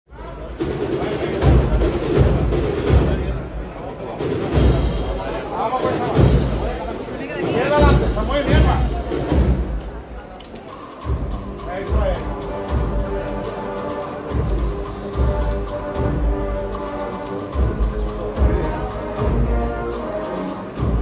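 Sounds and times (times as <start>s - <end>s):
deep bass drum beats: 0.1s - 9.9s, 11.1s - 13.4s, 14.3s - 19.9s
voices: 0.2s - 21.0s
procession band music: 0.3s - 10.0s, 10.7s - 21.0s.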